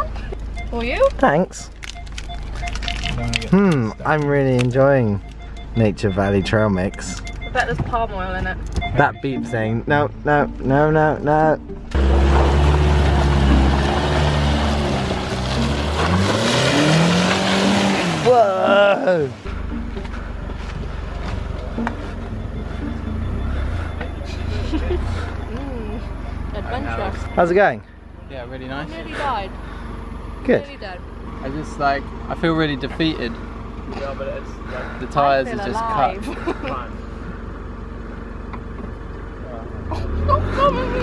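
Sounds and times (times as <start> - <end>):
engine idling low rumble: 0.0 - 15.9, 18.3 - 41.0
person exclaiming oh: 18.3 - 19.3.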